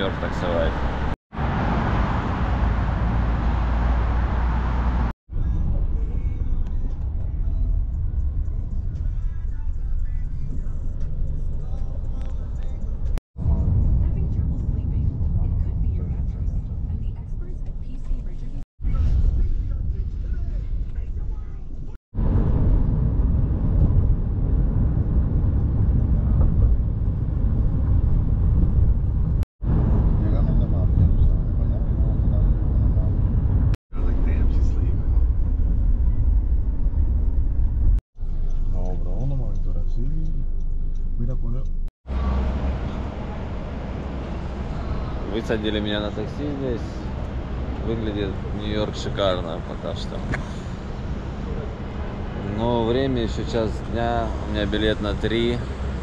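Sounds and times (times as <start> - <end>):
car road and engine rumble: 0.0 - 56.0.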